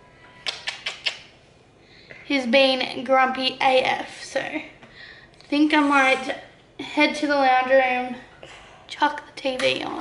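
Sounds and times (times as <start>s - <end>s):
wet kissing smacks: 0.4s - 1.3s.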